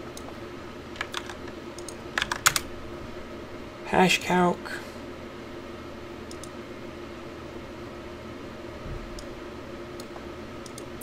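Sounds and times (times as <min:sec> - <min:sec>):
computer keyboard typing: 0:01.0 - 0:02.7, 0:06.3 - 0:06.5.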